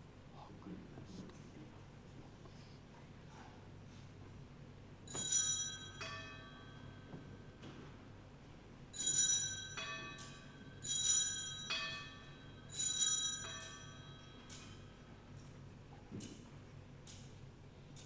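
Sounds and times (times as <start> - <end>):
hand-held altar bell ringing: 5.1 - 7.6, 8.9 - 15.1.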